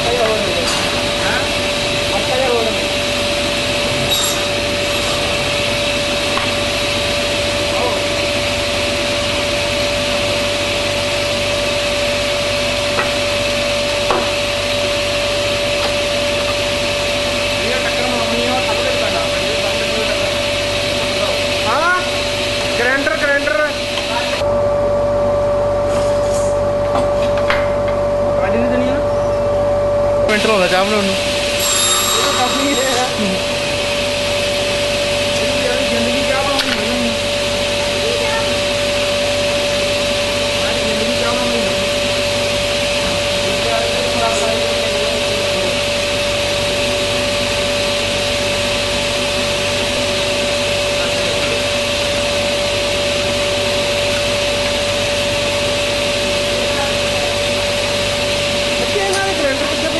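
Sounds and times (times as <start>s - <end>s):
table saw motor whine: 0.0s - 26.9s, 27.7s - 59.9s.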